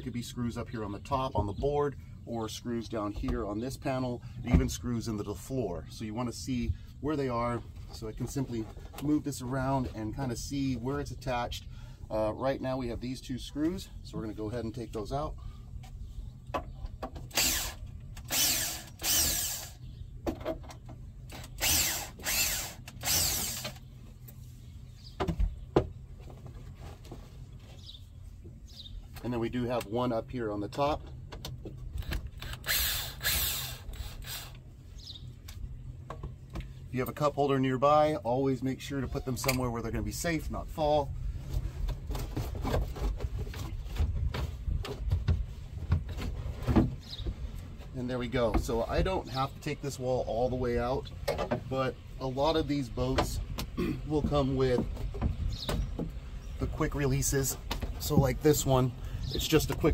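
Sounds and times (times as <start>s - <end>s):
cordless drill motor whine: 17.3s - 19.8s, 21.4s - 23.8s, 32.0s - 34.6s.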